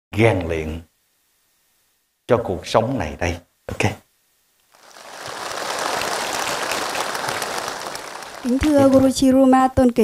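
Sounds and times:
crowd applauding: 4.7s - 9.1s.

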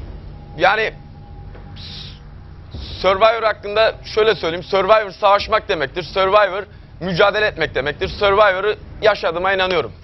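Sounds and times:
low studio hum: 0.0s - 10.0s.

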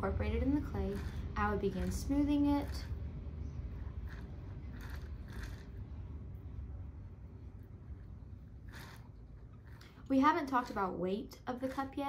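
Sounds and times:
low steady rumble: 0.0s - 12.0s
fingers rubbing soft clay: 3.8s - 5.8s.

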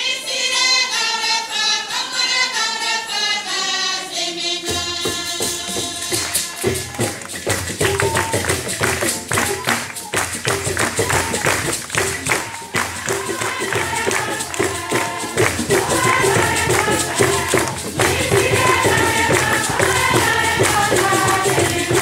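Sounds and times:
choir singing: 0.0s - 9.8s, 10.7s - 22.0s
fast hand percussion: 4.6s - 22.0s.

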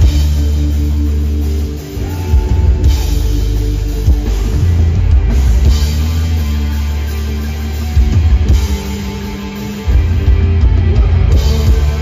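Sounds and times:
bass guitar: 0.0s - 12.0s
distorted electric guitars: 0.0s - 12.0s
drum kit: 0.0s - 12.0s.

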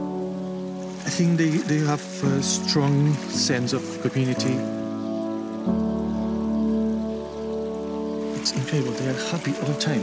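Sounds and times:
music of sustained chords: 0.0s - 10.0s
steady rain falling: 0.0s - 10.0s.

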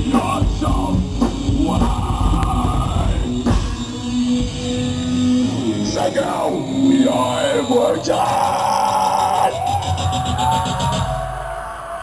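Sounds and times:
drum hits: 0.0s - 4.0s
bass guitar: 0.0s - 11.3s
distorted electric guitar: 0.0s - 11.6s.

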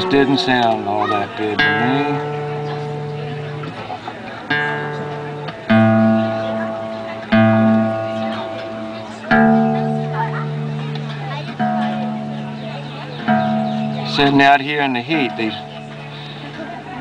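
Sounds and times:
acoustic guitar strings plucked: 0.0s - 17.0s.

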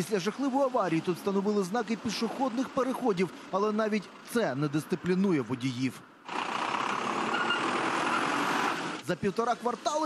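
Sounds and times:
city street traffic: 0.0s - 10.0s.

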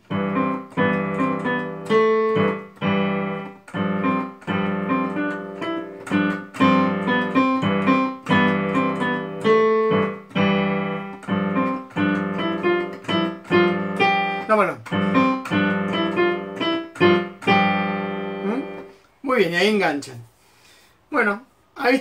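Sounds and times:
piano chords played slowly: 0.0s - 19.0s.

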